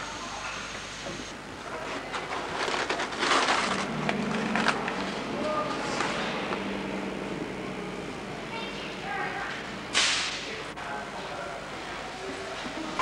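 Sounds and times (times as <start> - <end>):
faint background voices: 10.3 - 13.0.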